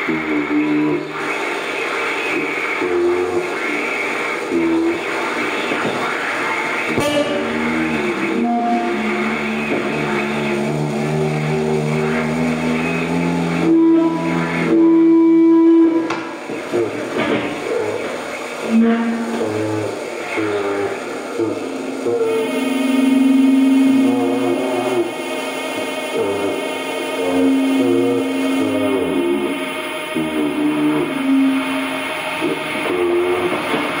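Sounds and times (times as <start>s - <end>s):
loud held electronic tone: 0.0s - 34.0s
sustained electronic tones: 0.0s - 34.0s.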